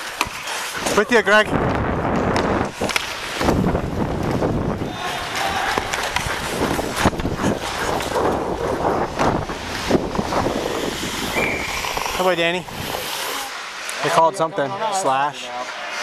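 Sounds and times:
skate blades scraping ice: 0.0s - 1.4s, 2.1s - 16.0s
sticks and puck clacking on ice: 0.0s - 1.5s, 2.1s - 14.0s
wind on microphone: 1.4s - 5.3s, 6.1s - 13.0s.

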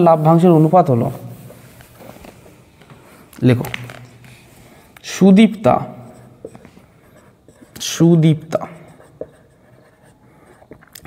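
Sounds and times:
marker scratching on whiteboard: 0.0s - 11.0s.

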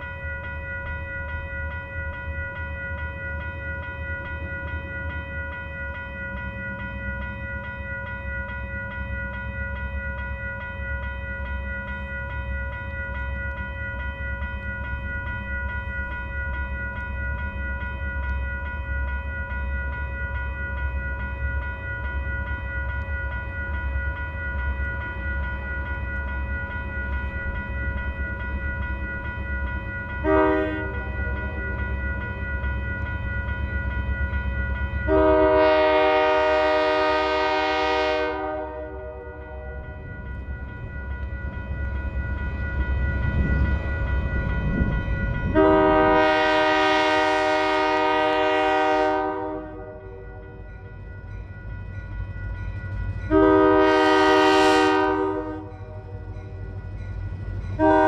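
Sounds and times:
diesel locomotive engine rumble: 0.0s - 58.0s
locomotive air horn: 30.2s - 31.1s, 35.1s - 39.6s, 45.6s - 50.0s, 53.3s - 55.7s, 57.8s - 58.0s.

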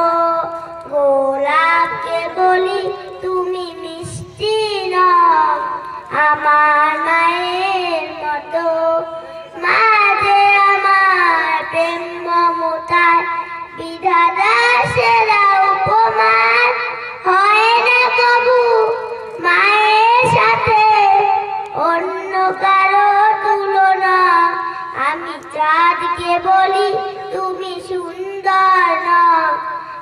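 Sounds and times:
girl singing into microphone: 0.0s - 30.0s.

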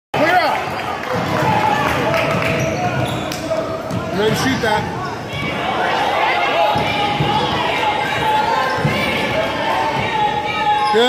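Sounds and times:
spectators' voices echoing: 0.2s - 11.0s.

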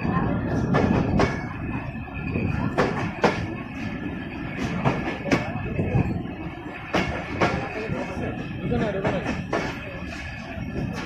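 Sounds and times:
train rumble: 0.0s - 11.0s.

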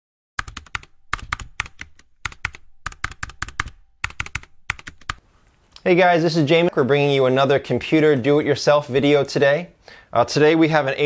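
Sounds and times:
sharp clicks in quick bursts: 0.4s - 5.2s.

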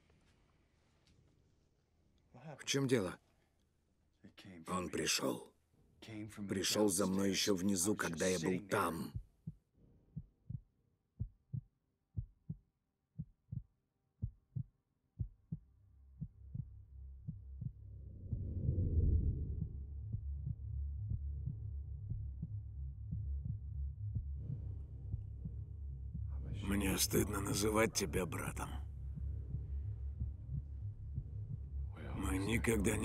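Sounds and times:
heartbeat thumps: 10.2s - 12.6s, 13.2s - 33.0s
deep low drone: 16.5s - 33.0s.

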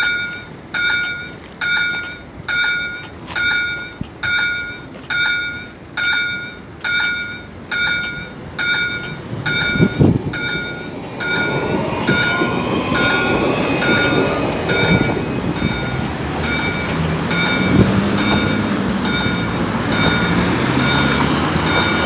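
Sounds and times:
tram motor whine rising: 0.0s - 22.0s
wheels rumbling on rail: 0.0s - 22.0s.

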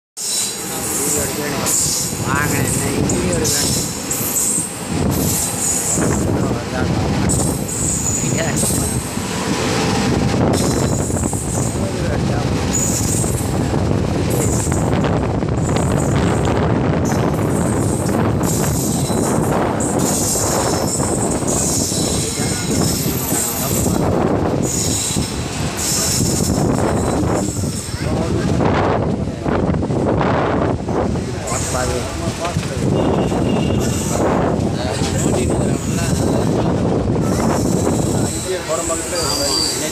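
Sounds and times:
high-pitched wheel squeal: 0.2s - 2.1s, 7.3s - 9.0s, 33.0s - 34.4s, 37.2s - 39.9s
train wheels rumbling on track: 0.2s - 39.9s.

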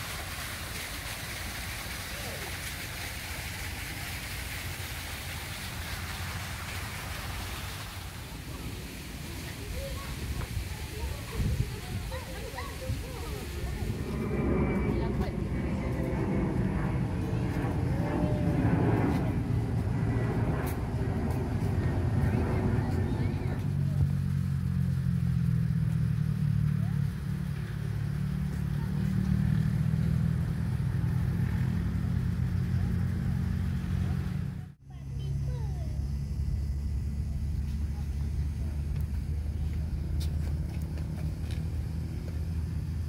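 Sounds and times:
steady low rumble: 0.0s - 43.0s.

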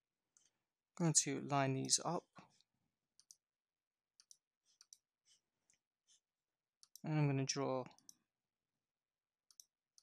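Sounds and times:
computer mouse clicks: 3.2s - 3.4s, 4.2s - 5.1s, 6.8s - 7.1s, 9.5s - 10.0s.

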